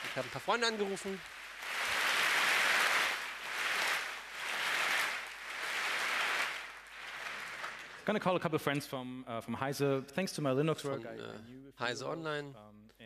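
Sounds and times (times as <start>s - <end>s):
audience applause: 0.0s - 8.1s.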